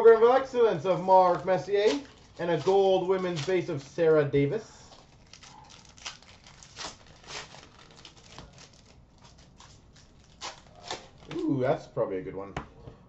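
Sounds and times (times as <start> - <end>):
foil wrappers crinkling: 0.8 - 11.4
trading cards rustling: 1.0 - 4.0, 4.9 - 11.4.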